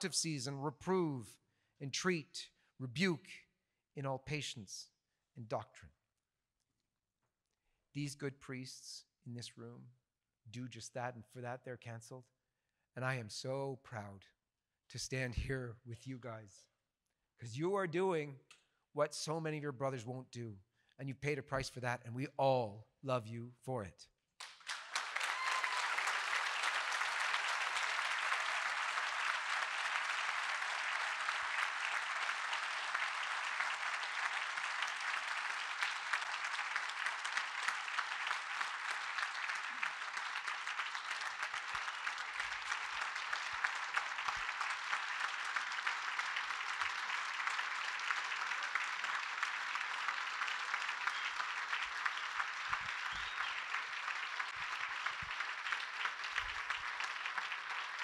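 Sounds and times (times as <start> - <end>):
many hands clapping: 24.4 - 58.0.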